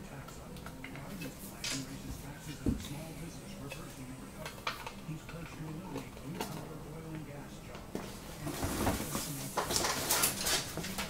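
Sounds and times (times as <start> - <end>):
faint background talking: 0.0 - 11.0.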